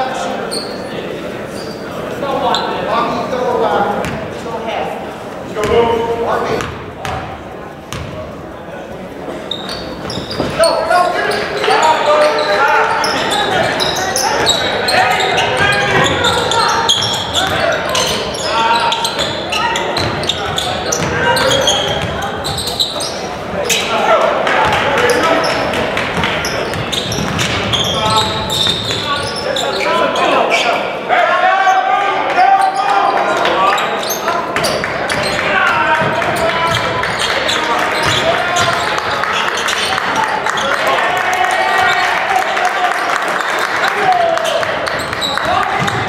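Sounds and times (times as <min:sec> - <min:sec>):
indistinct echoing voices: 0:00.0 - 0:46.0
basketball bouncing on hardwood floor: 0:45.8 - 0:46.0.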